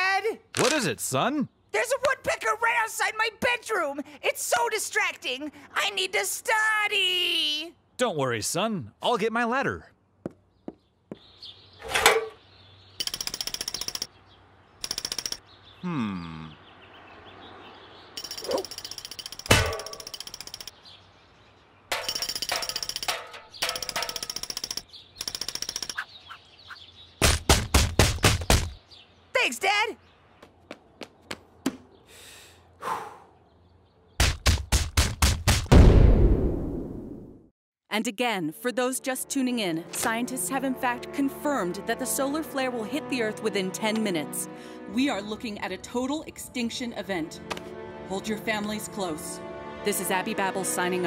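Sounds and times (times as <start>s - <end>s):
woodpecker drumming on tree: 12.9s - 15.6s, 18.1s - 21.0s, 21.9s - 28.8s.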